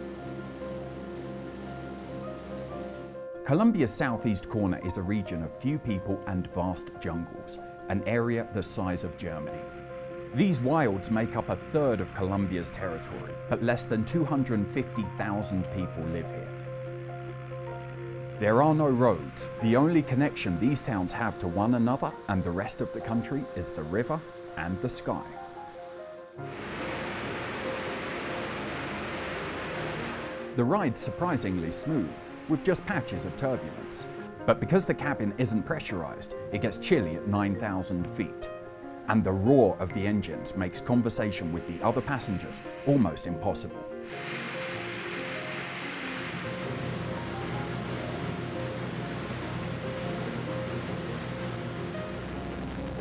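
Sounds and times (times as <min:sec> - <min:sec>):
airplane engines roaring: 0:00.0 - 0:03.2, 0:26.5 - 0:30.6, 0:31.2 - 0:34.6, 0:43.6 - 0:53.0
background music: 0:00.0 - 0:53.0
air noise hiss: 0:20.2 - 0:34.6, 0:41.0 - 0:52.6.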